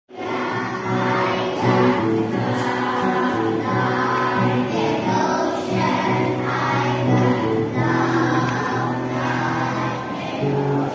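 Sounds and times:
children's choir singing: 0:00.1 - 0:10.9.

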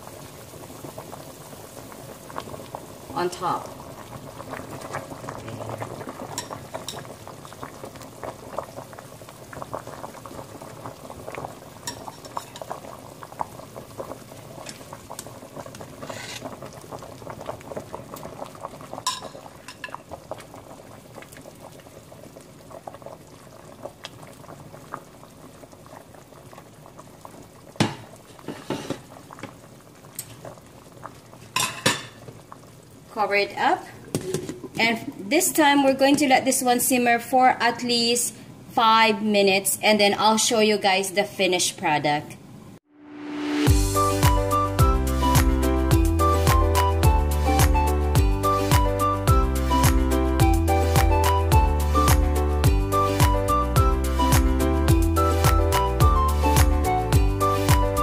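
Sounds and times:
soup boiling in a pot: 0:00.0 - 0:37.8
metal tongs clinking on pot: 0:19.1 - 0:19.9.

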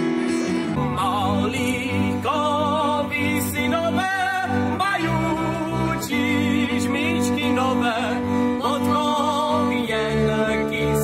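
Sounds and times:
violins playing folk tune: 0:00.0 - 0:11.0
man singing: 0:00.7 - 0:11.0.

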